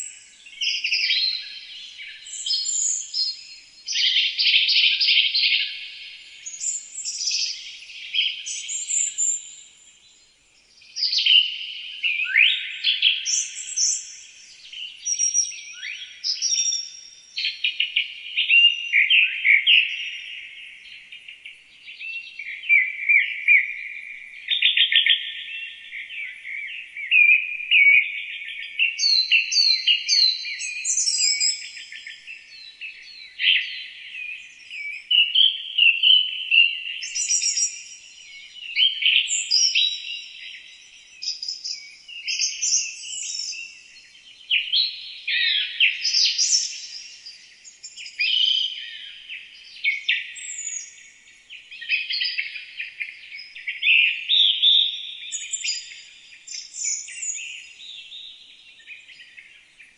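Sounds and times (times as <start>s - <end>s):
songbirds singing: 0.0s - 59.9s.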